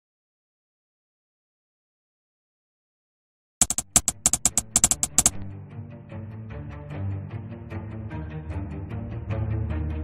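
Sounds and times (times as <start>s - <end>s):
keyboard key clicks: 3.6s - 5.5s.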